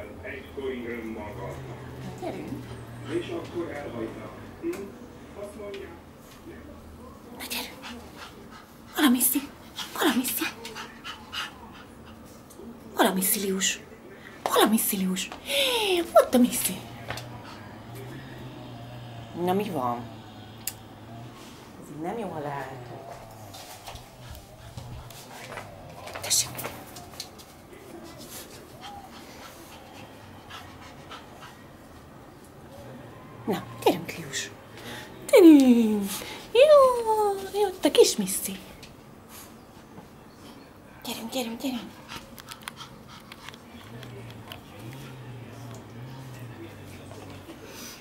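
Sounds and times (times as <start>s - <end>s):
dogs panting and whimpering: 1.5s - 3.9s, 7.6s - 12.5s, 15.4s - 37.5s, 41.4s - 48.0s
dogs scuffling: 20.9s - 31.2s
paws clicking: 22.8s - 27.6s, 42.0s - 47.5s.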